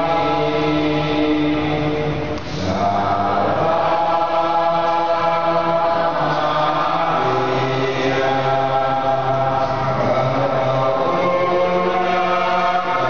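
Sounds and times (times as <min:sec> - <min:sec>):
group singing a hymn: 0:00.0 - 0:13.0.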